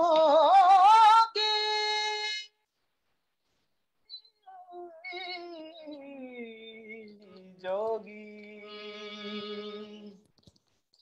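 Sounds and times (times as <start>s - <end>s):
man singing: 0.0s - 2.5s, 4.5s - 10.2s.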